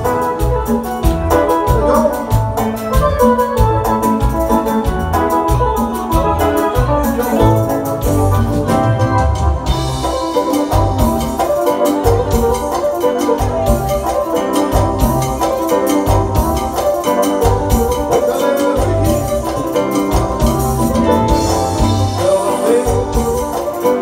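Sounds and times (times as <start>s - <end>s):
bass guitar: 0.0s - 24.0s
drums keeping a steady beat: 0.0s - 24.0s
electronic organ keyboard lead: 0.0s - 24.0s.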